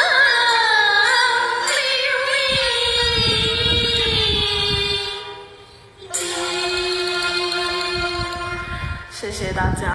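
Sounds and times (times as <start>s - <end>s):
opera accompaniment: 0.0s - 9.9s
woman singing long opera note: 6.0s - 9.5s.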